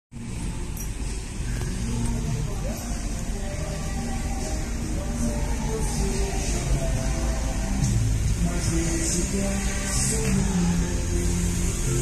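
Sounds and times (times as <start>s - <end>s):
road vehicles passing: 0.2s - 12.0s.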